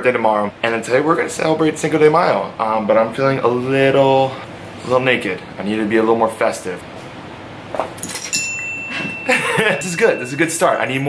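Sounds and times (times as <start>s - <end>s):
thin high ringing tone: 8.1s - 11.0s.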